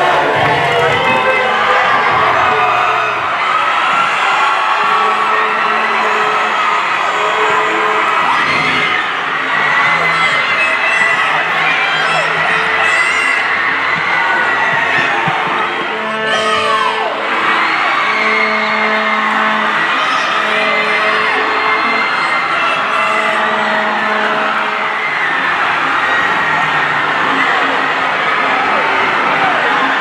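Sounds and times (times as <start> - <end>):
crowd cheering and whooping: 0.0 - 30.0
loud music with held notes: 0.0 - 30.0.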